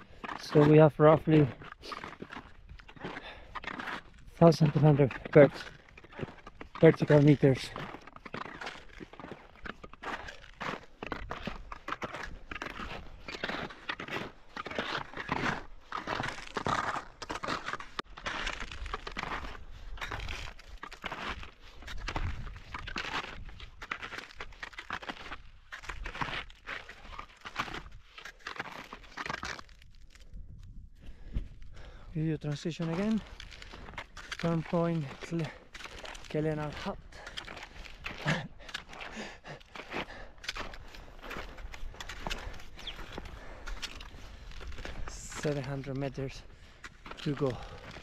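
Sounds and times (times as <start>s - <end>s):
skis crunching and scraping on snow: 0.0s - 48.0s.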